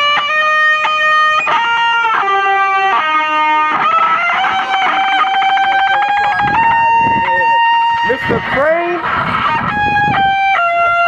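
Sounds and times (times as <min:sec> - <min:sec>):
electric guitar lead note: 0:00.0 - 0:11.0.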